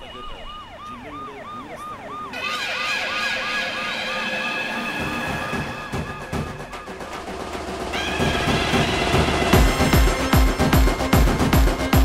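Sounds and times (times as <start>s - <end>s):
siren-like yelp: 0.0s - 10.0s
held high chord: 2.3s - 12.0s.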